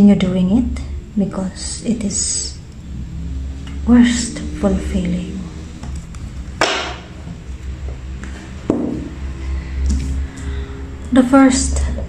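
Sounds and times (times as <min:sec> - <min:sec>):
quiet background music: 0:00.0 - 0:12.0
steady low hum: 0:00.0 - 0:12.0.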